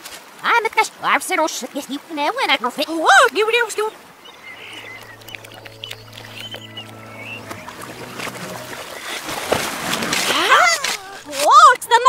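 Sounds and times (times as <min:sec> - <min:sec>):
reversed low musical note: 0:04.2 - 0:11.4
short high chirps: 0:04.2 - 0:11.4.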